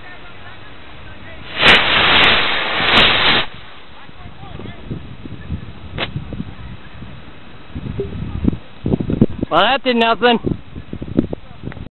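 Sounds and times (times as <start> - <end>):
rocket motor rushing hiss: 1.4 - 3.9
sharp pop: 1.6 - 3.6, 6.0 - 6.2.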